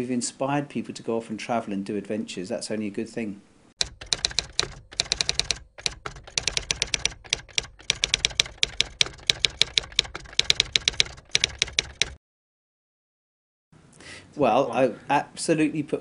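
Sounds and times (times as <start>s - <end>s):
typewriter keystrokes clacking: 3.8s - 12.2s.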